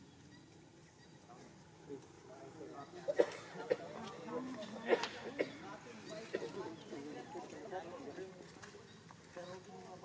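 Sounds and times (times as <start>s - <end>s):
faint voices talking: 1.2s - 10.0s.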